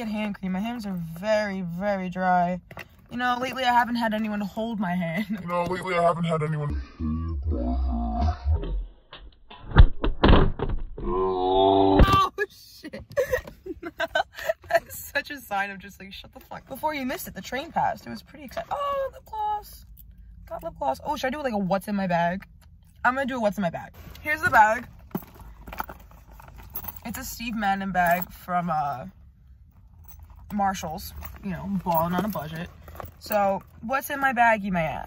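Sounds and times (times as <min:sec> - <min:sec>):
metal chain clinking: 0:24.9 - 0:33.9.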